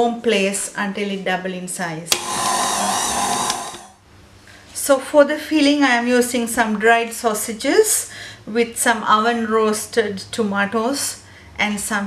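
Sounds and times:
mixer switch click: 0:02.1 - 0:02.6
stand mixer motor whir: 0:02.1 - 0:04.0.

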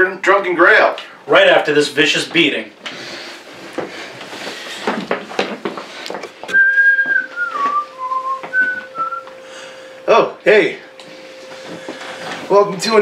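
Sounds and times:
person whistling a tune: 0:06.5 - 0:09.3.

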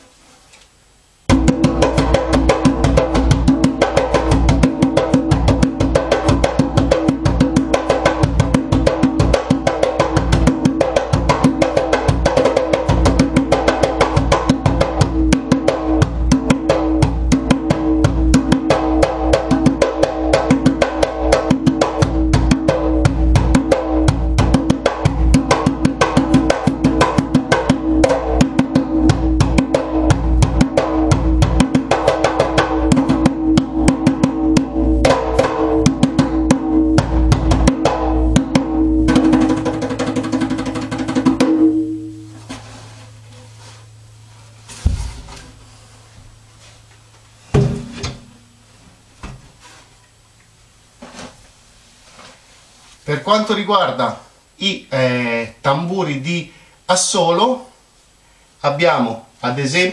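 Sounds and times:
djembe played by hand: 0:01.3 - 0:43.8.

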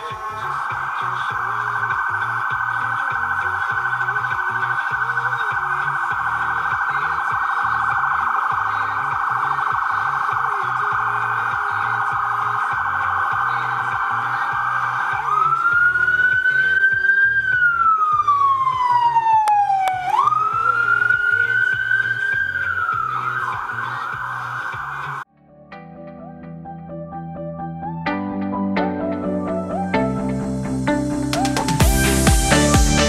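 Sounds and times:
ambulance siren: 0:00.0 - 0:25.2.

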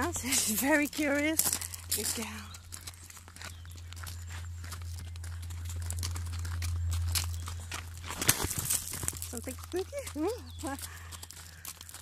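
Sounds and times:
horse hooves walking: 0:00.0 - 0:12.0
steady low hum: 0:00.0 - 0:12.0.

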